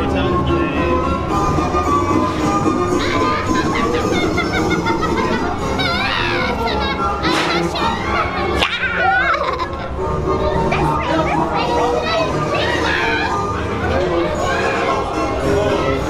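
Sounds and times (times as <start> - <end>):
background music: 0.0 - 16.0
voices shrieking and laughing: 2.9 - 15.2
sharp crack: 7.3 - 7.7.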